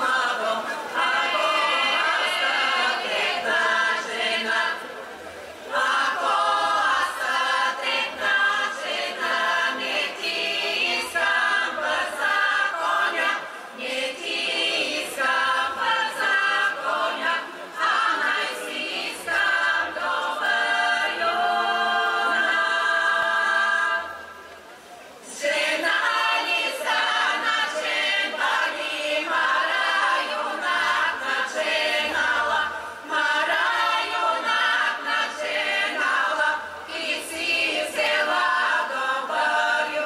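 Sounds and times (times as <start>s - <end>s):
women's choir singing: 0.0s - 24.4s, 25.2s - 40.0s.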